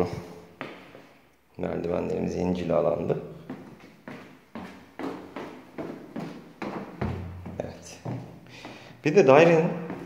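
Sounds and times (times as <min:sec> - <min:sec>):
footsteps going down stairs: 0:00.0 - 0:01.2, 0:01.8 - 0:10.0.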